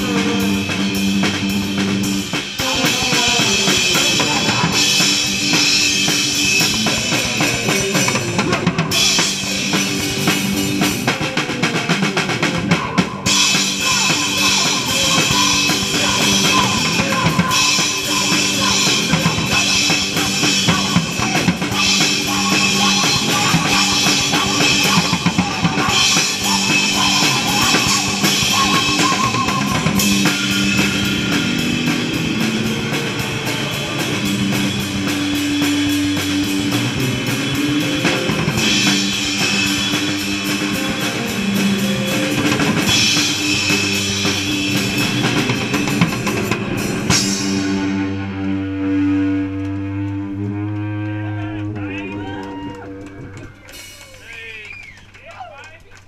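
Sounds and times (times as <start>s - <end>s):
drum kit with crashing cymbals: 0.0s - 48.2s
punk rock band playing loudly: 0.0s - 50.7s.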